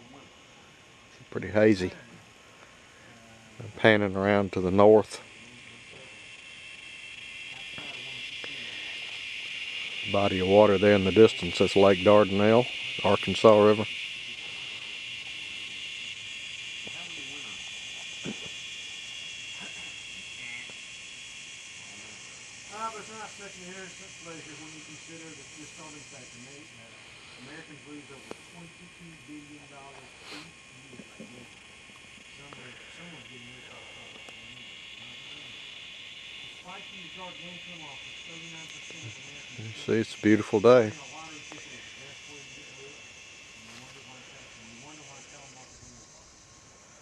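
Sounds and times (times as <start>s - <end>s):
faint voices: 0.0s - 47.0s
insects buzzing: 0.0s - 47.0s.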